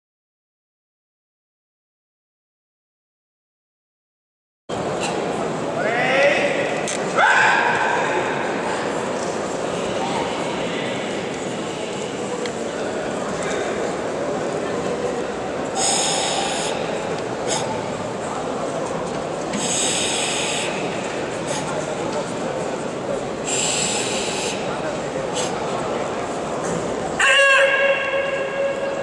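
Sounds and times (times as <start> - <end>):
crowd murmur: 4.7 - 29.0
sharp high-pitched shout: 7.2 - 8.1, 27.2 - 29.0
forceful hissing exhale: 15.8 - 16.8, 19.6 - 20.9, 23.5 - 24.7.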